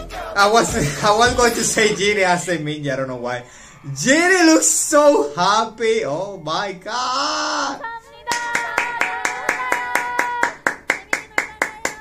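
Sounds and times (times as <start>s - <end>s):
person clapping hands: 8.3s - 12.0s.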